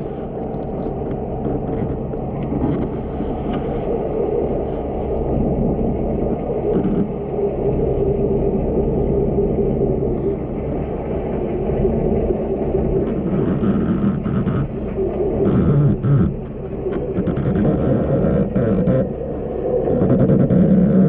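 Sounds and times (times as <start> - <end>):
faint hum of steady tones: 0.0 - 21.0
underwater low rumble: 0.0 - 21.0.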